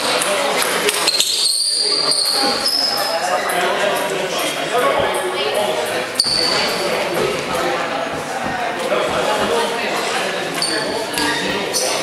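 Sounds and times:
echoing crowd chatter: 0.0 - 12.0.

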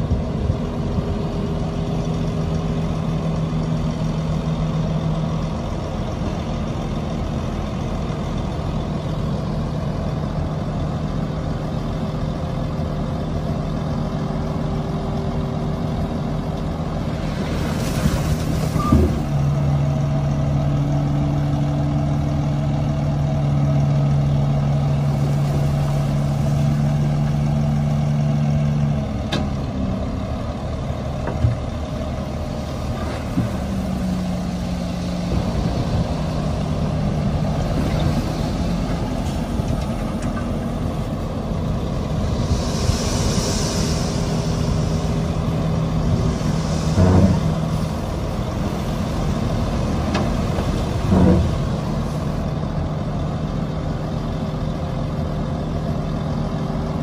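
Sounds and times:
heavy diesel engines running: 0.0 - 57.0
air brakes hissing: 41.9 - 49.3.

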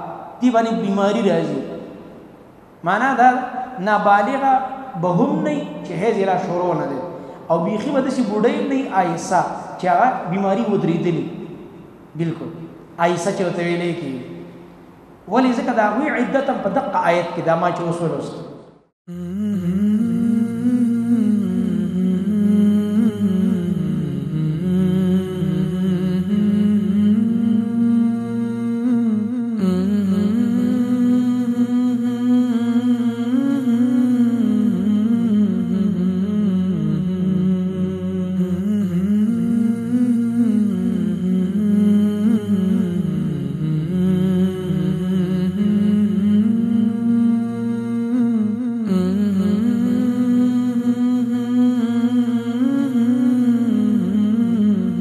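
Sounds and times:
person humming a melody: 19.1 - 55.0.

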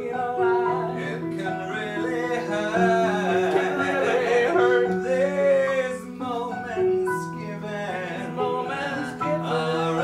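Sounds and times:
person singing into a microphone: 0.0 - 10.0
sustained keyboard chords: 0.0 - 10.0.

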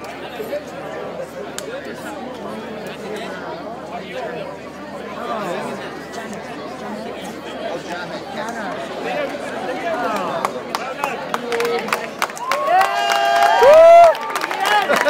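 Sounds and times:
audience chatter: 0.0 - 15.0.

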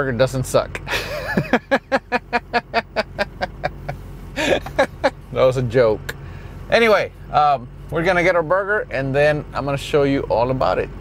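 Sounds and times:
truck engine idling: 0.6 - 11.0
man laughing heartily: 0.9 - 5.3.

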